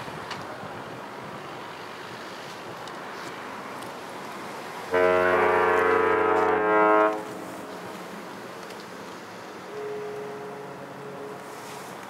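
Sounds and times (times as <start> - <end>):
faint horn tone: 4.9 - 8.0, 9.7 - 11.9
deep ship's horn blast: 4.9 - 8.1, 9.7 - 11.9.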